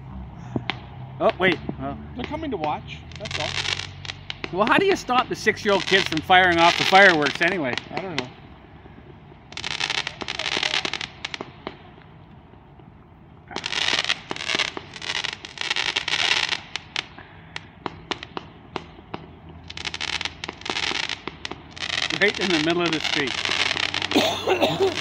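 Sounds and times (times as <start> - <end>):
firework bangs: 0.0 - 25.0
fireworks popping: 0.0 - 25.0.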